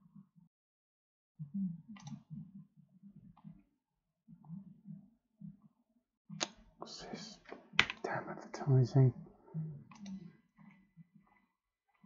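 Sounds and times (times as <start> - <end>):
computer mouse click: 9.9 - 10.2.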